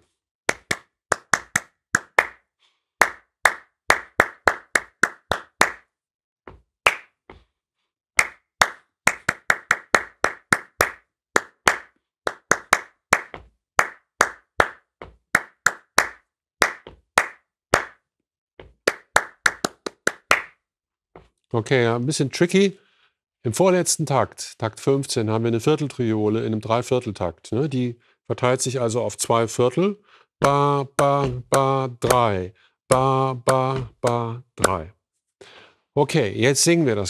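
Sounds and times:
hand claps in rhythm: 0:00.5 - 0:05.9, 0:06.8 - 0:07.2, 0:08.2 - 0:20.6, 0:30.4 - 0:34.9.

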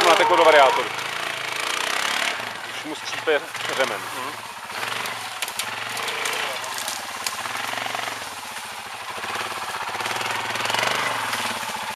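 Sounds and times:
quad bike engine running: 0:00.0 - 0:11.9.

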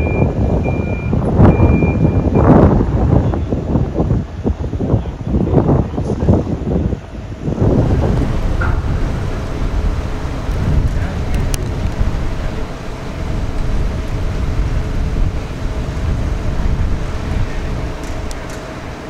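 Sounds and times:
low engine rumble: 0:00.0 - 0:19.0
wind blowing across microphone: 0:00.0 - 0:19.0
faint steady hum: 0:07.1 - 0:19.0.

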